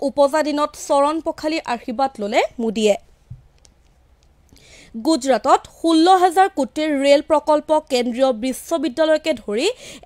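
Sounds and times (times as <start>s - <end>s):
woman speaking: 0.0s - 3.1s, 4.9s - 10.0s
soft thump: 3.3s - 3.5s
woman breathing in: 4.5s - 5.0s, 9.8s - 10.0s.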